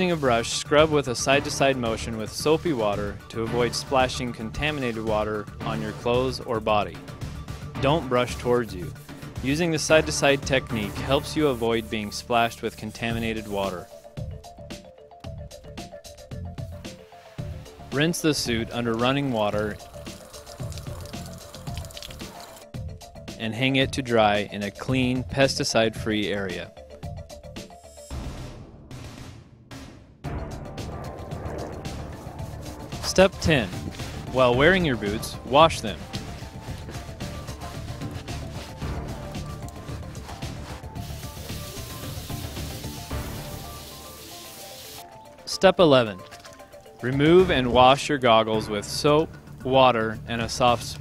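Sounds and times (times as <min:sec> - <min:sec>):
background music with steady beat: 0:00.0 - 0:51.0
water spraying from hose: 0:18.7 - 0:22.7, 0:31.1 - 0:45.2
brush scrubbing a boot: 0:32.0 - 0:33.1, 0:33.8 - 0:45.0.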